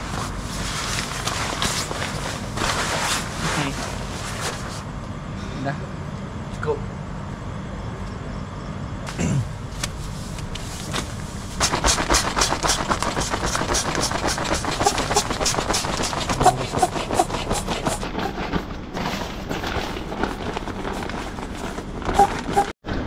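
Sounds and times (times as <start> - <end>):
bedding rustling and crinkling: 0.0 - 4.9, 9.6 - 22.8.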